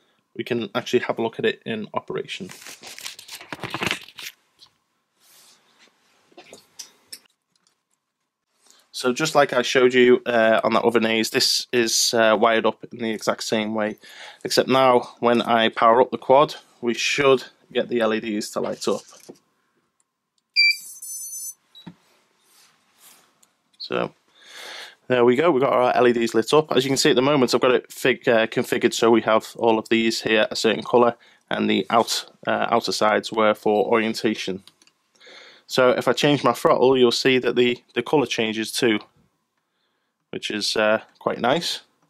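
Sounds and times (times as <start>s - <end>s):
short high beep: 20.6s - 21.9s.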